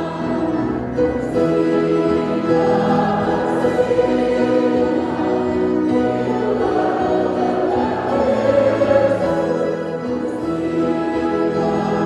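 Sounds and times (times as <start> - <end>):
congregation singing a hymn: 0.0 - 12.0
organ chords: 0.0 - 12.0.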